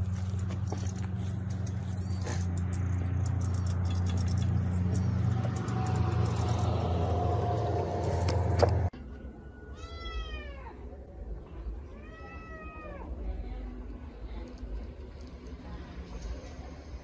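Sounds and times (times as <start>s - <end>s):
cat meowing: 9.7s - 10.9s, 11.9s - 13.2s.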